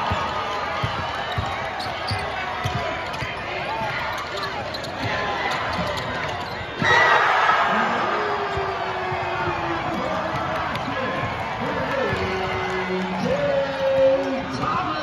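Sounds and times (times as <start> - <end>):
crowd chatter: 0.0 - 15.0
crowd cheering: 0.0 - 15.0
basketball bouncing on hardwood: 0.8 - 4.0.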